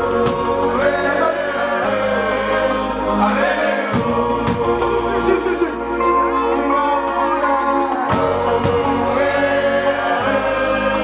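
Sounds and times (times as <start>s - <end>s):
voices singing over a band: 0.0s - 11.0s.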